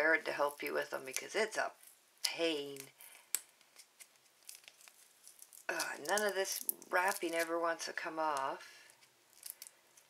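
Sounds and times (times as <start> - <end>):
plastic wrap crinkling: 0.3 - 10.0.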